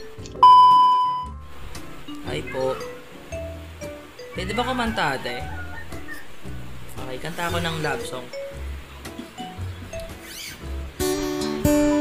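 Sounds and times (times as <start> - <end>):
electronic chime: 0.4 - 1.3.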